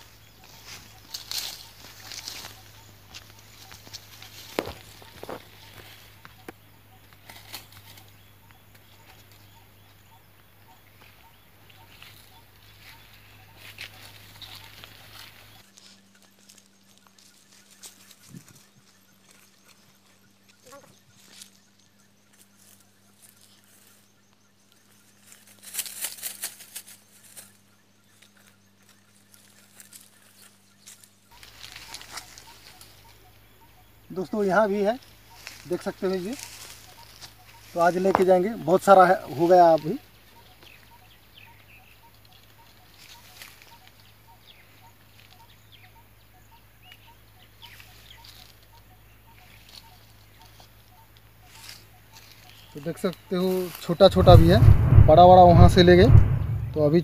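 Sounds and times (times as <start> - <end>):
leafy brush rustling: 0.0 - 9.8, 10.8 - 24.1, 25.0 - 33.6, 34.2 - 45.6, 46.9 - 57.0
footsteps on dry grass: 0.0 - 33.6, 35.0 - 38.5, 40.1 - 45.9, 47.5 - 56.9.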